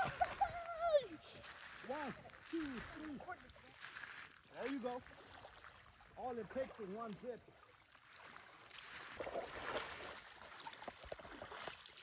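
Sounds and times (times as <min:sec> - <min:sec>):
river water splashing: 0:00.0 - 0:12.0.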